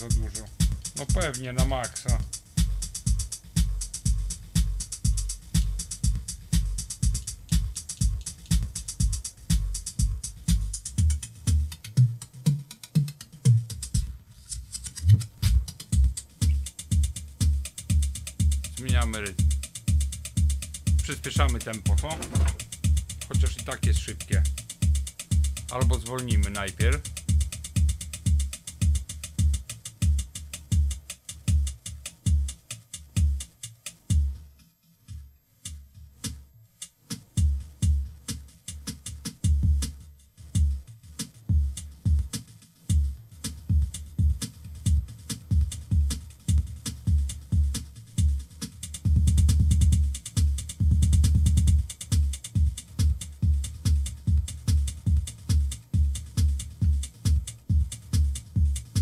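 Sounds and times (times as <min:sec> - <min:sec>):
rapid dense bass hits: 0:00.0 - 0:11.7, 0:15.0 - 0:28.4, 0:49.1 - 0:51.9, 0:52.6 - 0:59.0
heavy kick drum: 0:00.0 - 0:12.2, 0:13.5 - 0:14.2, 0:15.0 - 0:32.6, 0:34.1 - 0:34.4, 0:37.4 - 0:59.0
electronic drum machine beat: 0:00.0 - 0:34.5, 0:35.1 - 0:59.0.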